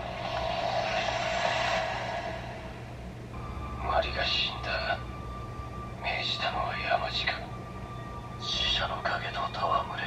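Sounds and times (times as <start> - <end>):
rushing noise: 0.0 - 3.3
steady low hum: 0.0 - 10.0.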